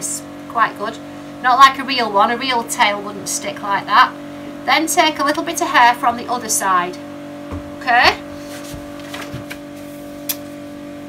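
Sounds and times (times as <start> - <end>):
steady background hum: 0.0 - 11.0
paper booklet being handled: 8.4 - 10.0.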